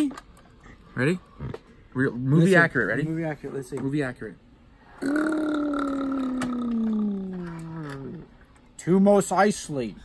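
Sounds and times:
man's held vocal tone: 5.0 - 8.2.

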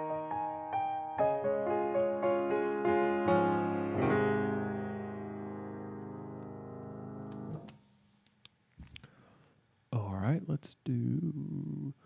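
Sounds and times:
grand piano chord ringing: 0.0 - 7.6
faint piano clicks: 6.2 - 6.6, 7.2 - 9.1.

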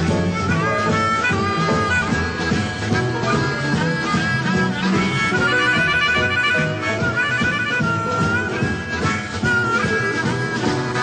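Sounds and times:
blues band playing: 0.0 - 11.0
harmonica lead line: 0.0 - 11.0.

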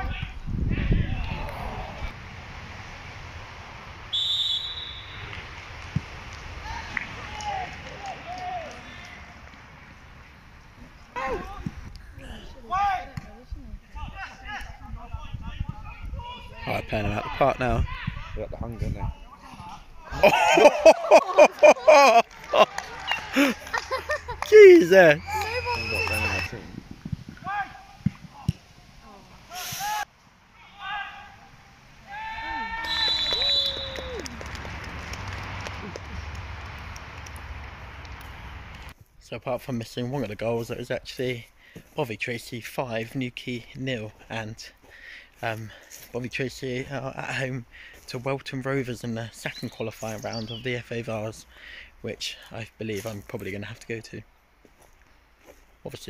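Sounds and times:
people shouting: 0.0 - 2.1, 6.6 - 9.3, 24.5 - 26.5, 29.5 - 34.3
low outdoor background: 0.0 - 56.0.

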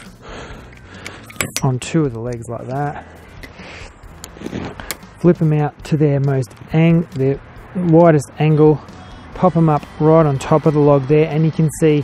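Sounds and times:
tripod being handled: 0.0 - 2.8, 4.2 - 5.1.

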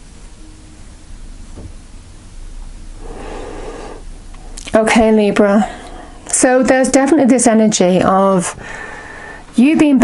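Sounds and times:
breath-like inhale: 3.0 - 4.1, 8.6 - 9.5.

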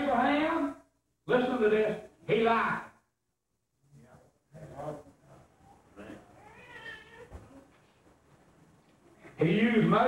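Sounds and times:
faint high-pitched cry: 5.4 - 7.9.

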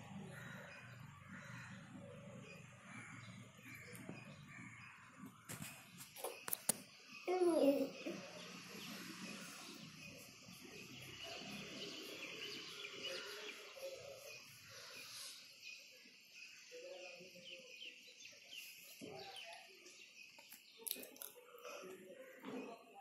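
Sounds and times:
faint indistinct murmurs: 0.0 - 20.2
birds chirping: 0.0 - 23.0.

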